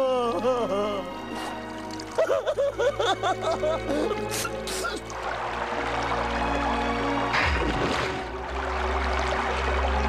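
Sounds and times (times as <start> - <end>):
cartoon gushing water: 3.9 - 5.2.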